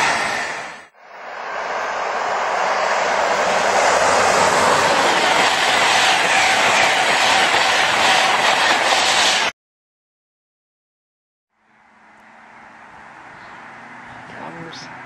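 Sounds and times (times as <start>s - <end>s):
train passing at speed: 0.0s - 9.5s, 11.6s - 15.0s.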